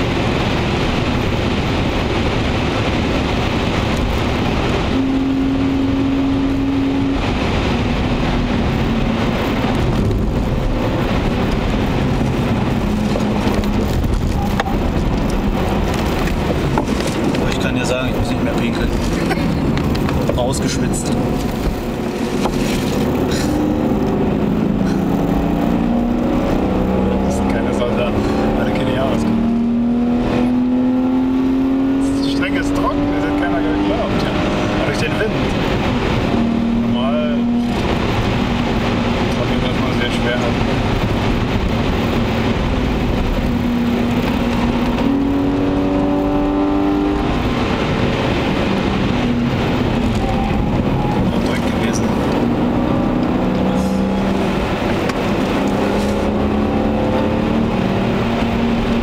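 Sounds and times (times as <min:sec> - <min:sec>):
car engine accelerating: 0:00.0 - 0:59.0
road and tyre noise: 0:00.0 - 0:59.0.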